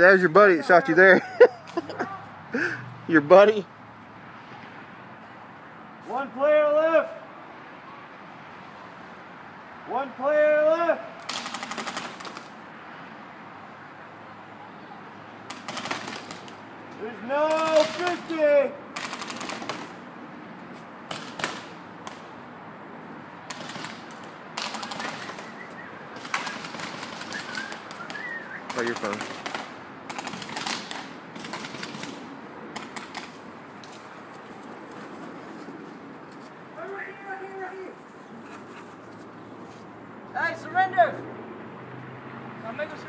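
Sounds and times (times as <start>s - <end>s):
person calling out: 1.9s - 2.4s
paintball marker firing rapidly: 11.2s - 12.5s, 15.5s - 16.6s, 17.5s - 18.2s, 19.0s - 20.0s, 21.1s - 22.2s, 23.5s - 25.5s, 26.2s - 33.4s.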